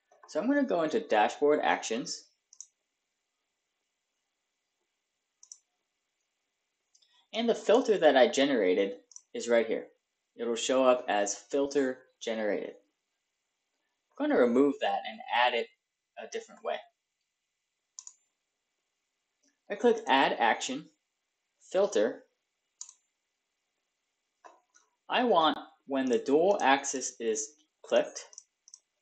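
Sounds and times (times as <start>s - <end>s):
computer mouse click: 2.5s - 2.8s, 5.4s - 5.6s, 18.0s - 18.3s, 22.8s - 23.1s, 28.2s - 28.9s.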